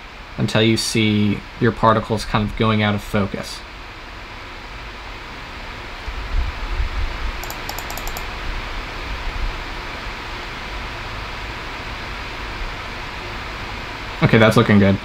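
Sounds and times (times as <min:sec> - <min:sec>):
computer fan hiss: 0:00.0 - 0:15.0
faint clicks: 0:07.4 - 0:08.3.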